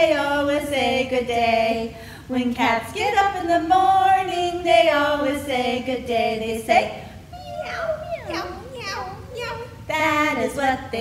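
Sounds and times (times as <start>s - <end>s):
women singing meows: 7.3s - 8.6s.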